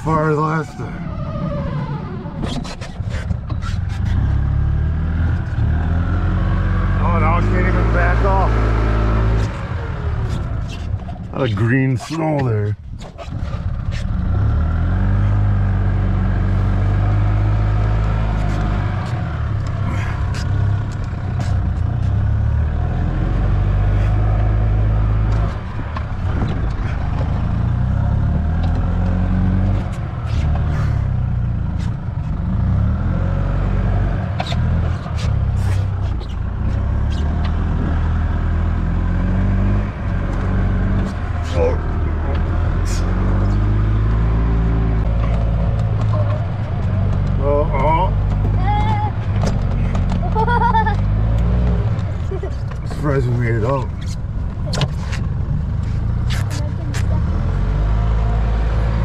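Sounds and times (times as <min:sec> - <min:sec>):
golf cart engine running: 0:15.3 - 0:23.1, 0:44.7 - 0:57.4.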